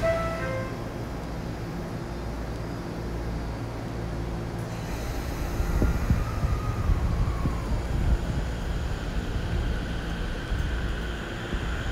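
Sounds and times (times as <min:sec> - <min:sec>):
electric train rumbling: 0:00.0 - 0:11.9
faint motor whine: 0:00.0 - 0:11.9.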